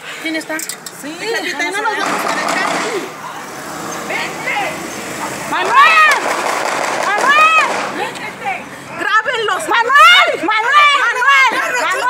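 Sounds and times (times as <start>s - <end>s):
van driving slowly: 2.9s - 10.5s.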